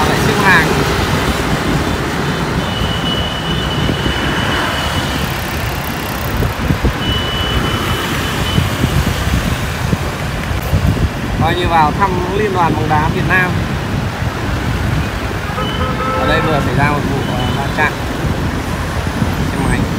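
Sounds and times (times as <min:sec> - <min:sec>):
motorbike rumble: 0:00.0 - 0:19.9
traffic of scooters and cars: 0:00.0 - 0:19.9
wind buffeting microphone: 0:00.0 - 0:19.9.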